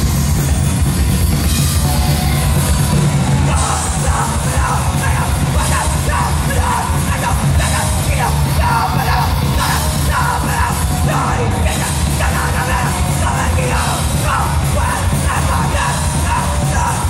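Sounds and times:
punk band playing live: 0.0s - 17.0s
singer yelling: 1.8s - 17.0s.

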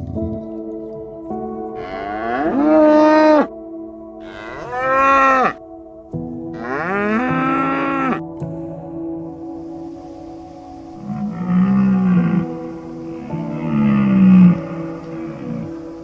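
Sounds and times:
ambient background music drone: 0.0s - 16.0s
cow mooing: 1.8s - 3.5s, 4.2s - 5.6s, 6.6s - 8.3s, 11.0s - 15.8s.

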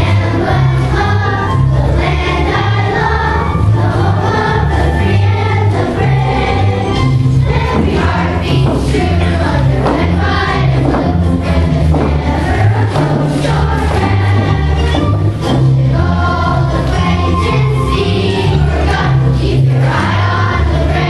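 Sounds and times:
children's choir singing: 0.0s - 21.0s
instrumental accompaniment: 0.0s - 21.0s.

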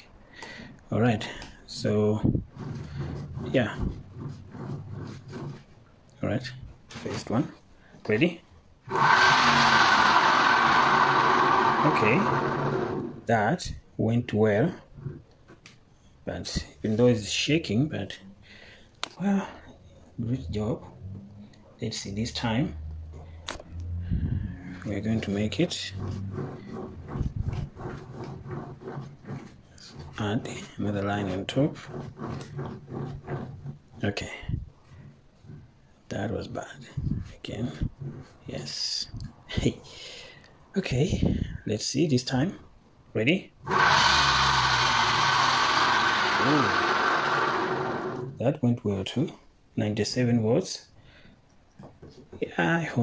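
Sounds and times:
rope rubbing and rustling: 1.8s - 7.3s, 24.8s - 36.1s, 37.0s - 38.5s.

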